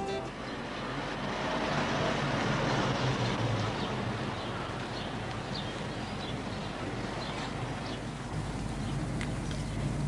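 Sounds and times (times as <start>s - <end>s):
programme music: 0.0s - 0.4s
street traffic noise: 0.0s - 10.0s.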